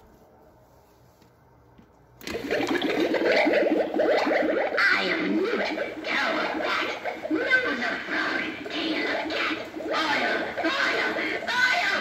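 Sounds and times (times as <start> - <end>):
warbling bubbling sound effect: 2.2 - 12.0.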